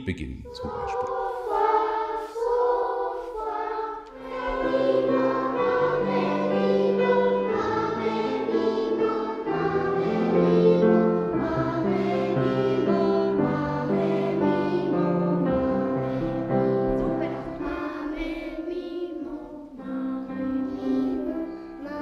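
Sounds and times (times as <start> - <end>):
children singing together: 0.5 - 22.0
piano accompaniment: 0.7 - 22.0.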